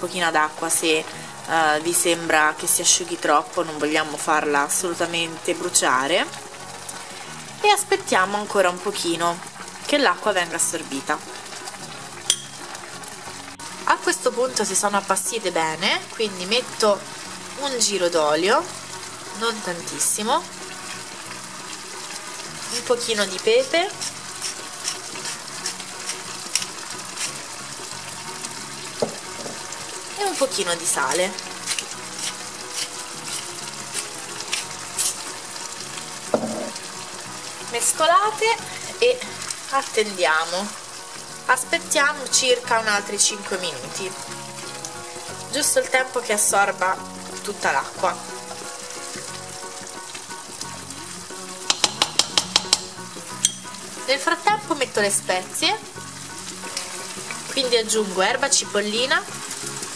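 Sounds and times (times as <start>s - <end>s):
vegetables sizzling in a frying pan: 0.0s - 59.9s
spatula knocking on pan: 29.0s - 29.7s, 36.4s - 36.8s, 51.7s - 53.8s.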